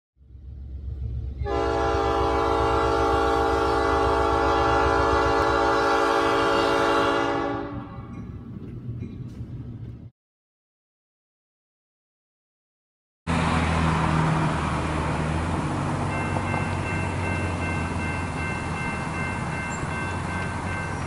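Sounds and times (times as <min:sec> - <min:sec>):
low engine rumble: 0:00.2 - 0:06.2, 0:13.3 - 0:21.0
locomotive air horn blast: 0:01.4 - 0:08.1.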